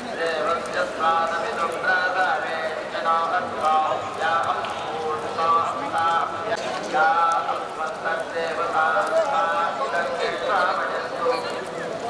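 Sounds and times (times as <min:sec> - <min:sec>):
group of people talking: 0:00.0 - 0:12.0.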